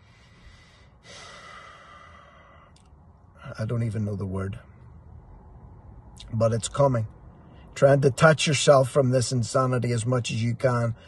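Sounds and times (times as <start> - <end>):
man sighing: 1.0 - 2.8
mouth click: 2.7 - 3.0.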